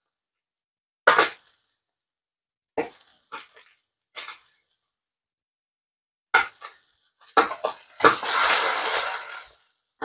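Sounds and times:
fish sizzling in a pan: 6.5s - 9.9s.

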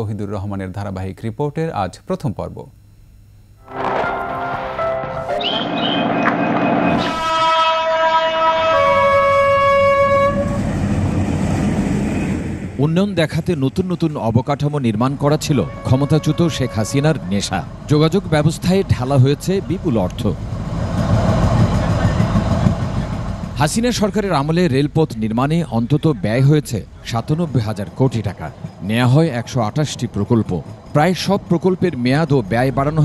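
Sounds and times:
train horn blast: 3.6s - 10.8s, 15.4s - 17.5s
train rumble: 3.7s - 33.0s.

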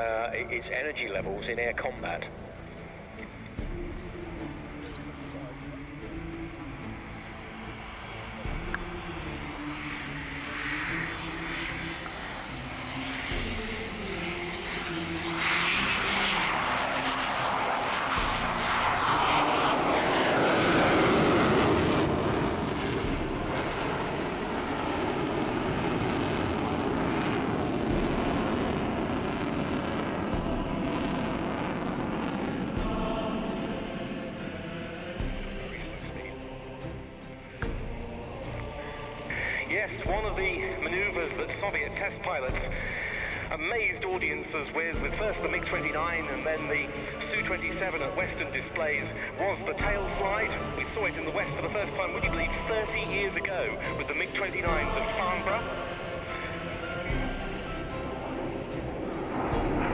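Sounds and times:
jet roar: 0.0s - 59.9s
thin rising whine: 2.3s - 42.2s, 53.4s - 59.9s.

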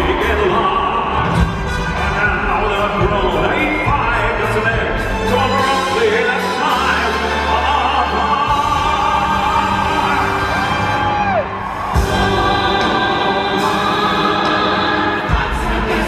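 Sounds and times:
backing band: 0.0s - 16.0s
singers and ensemble: 0.0s - 16.0s.

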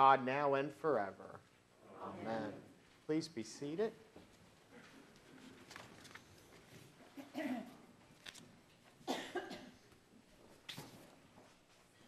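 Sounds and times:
person coughing: 9.0s - 9.8s.

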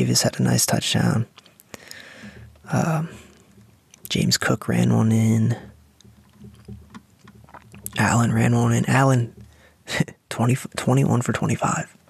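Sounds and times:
person speaking: 0.0s - 3.4s, 4.0s - 5.8s, 7.6s - 12.0s
breath noise: 1.7s - 3.7s, 9.4s - 9.9s.

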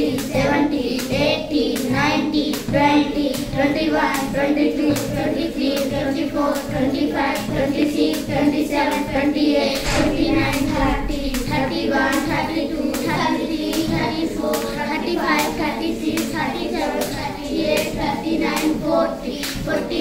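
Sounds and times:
children chanting and cheering: 0.0s - 20.0s.

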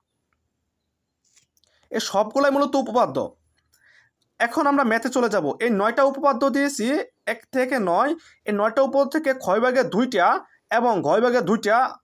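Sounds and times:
faint clicks: 1.2s - 1.9s, 3.5s - 4.4s
person speaking: 1.9s - 3.5s, 4.4s - 12.0s.

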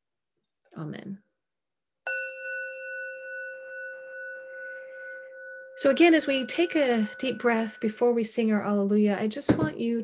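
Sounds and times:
singing bowl ringing: 2.0s - 9.5s.

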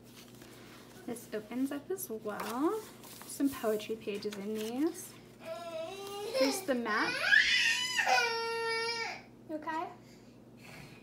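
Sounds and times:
young child crying whine: 5.4s - 9.3s.

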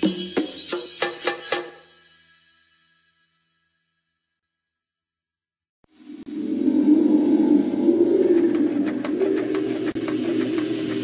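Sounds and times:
bird cooing: 6.6s - 11.0s.

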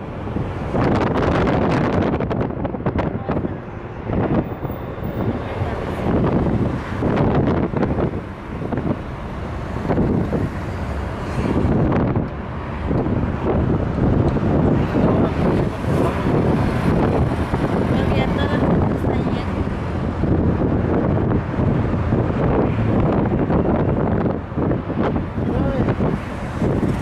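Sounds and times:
car road noise: 0.0s - 27.0s
wind buffeting microphone: 0.0s - 27.0s.

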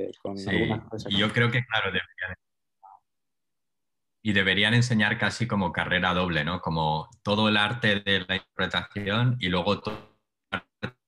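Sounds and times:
speech: 0.0s - 2.4s, 4.2s - 10.0s.

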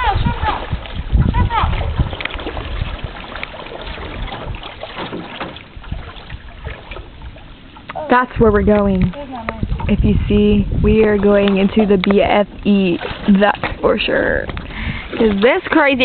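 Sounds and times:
water splashing from paddling: 0.0s - 16.0s
knocks against canoe hull: 3.9s - 5.9s.

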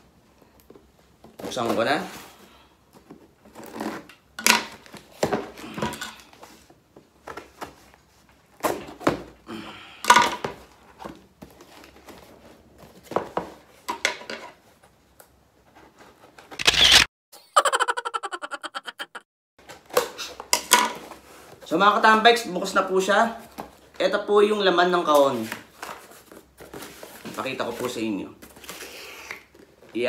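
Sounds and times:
tape tearing and crinkling: 16.5s - 17.1s
scissors slitting packing tape: 16.6s - 17.1s.

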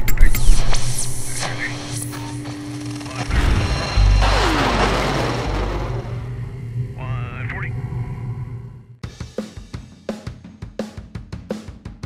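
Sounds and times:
loud boom with deep rumble: 3.3s - 6.6s.

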